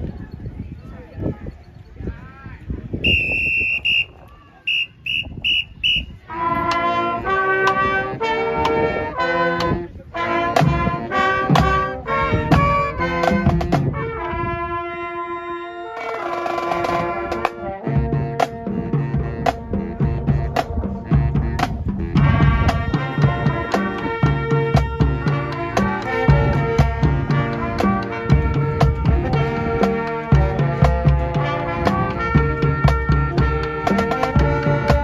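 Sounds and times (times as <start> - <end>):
pep band playing brass chords: 3.0 - 35.0.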